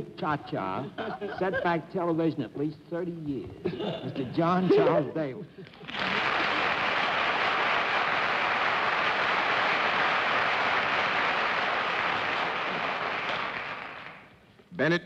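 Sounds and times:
audience laughing: 0.5s - 1.9s
audience applauding: 5.8s - 14.4s.

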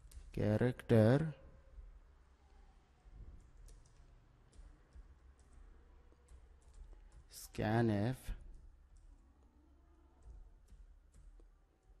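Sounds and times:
computer keyboard keystrokes: 3.4s - 7.4s.

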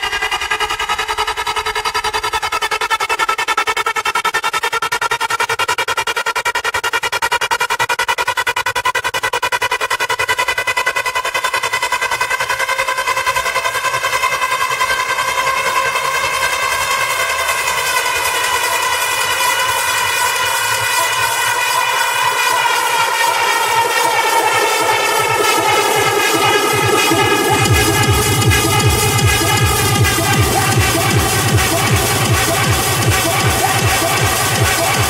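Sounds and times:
bass and kick drum: 23.2s - 35.0s
buzzing synth chord pulsing: 23.2s - 35.0s.

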